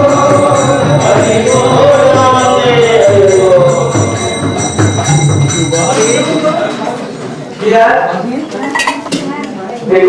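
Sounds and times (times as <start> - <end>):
metallic clinking and ringing: 0.0 - 6.9
crowd voices: 0.0 - 10.0.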